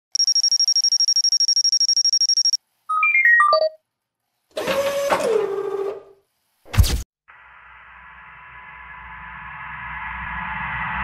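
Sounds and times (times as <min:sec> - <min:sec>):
electronic telephone ringtone trill: 0:00.2 - 0:03.8.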